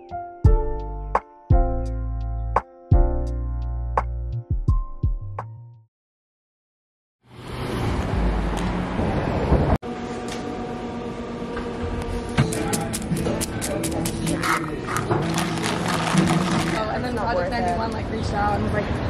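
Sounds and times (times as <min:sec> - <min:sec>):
passing traffic: 0:07.2 - 0:09.9
indistinct voices: 0:12.4 - 0:19.0.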